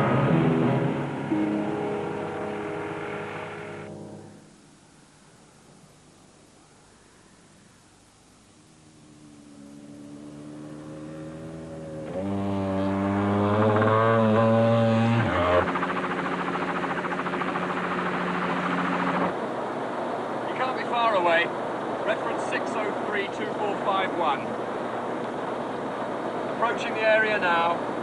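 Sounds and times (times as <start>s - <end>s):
helicopter drone: 0.0s - 4.4s, 9.2s - 28.0s.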